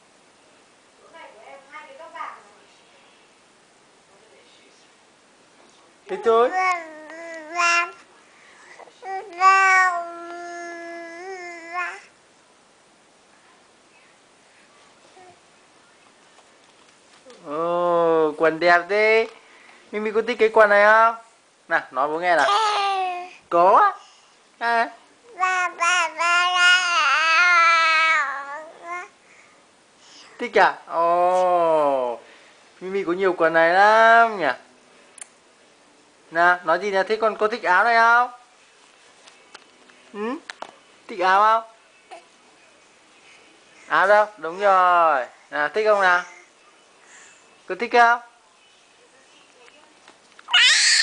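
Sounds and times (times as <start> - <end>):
baby cooing: 6.1 - 12.2, 22.4 - 23.4, 25.3 - 29.2, 50.5 - 51.0
baby squealing: 50.5 - 51.0.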